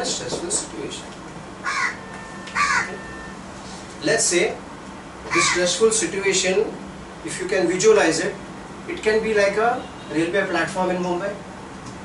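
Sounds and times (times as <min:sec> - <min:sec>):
harsh bird call: 0:01.6 - 0:03.2.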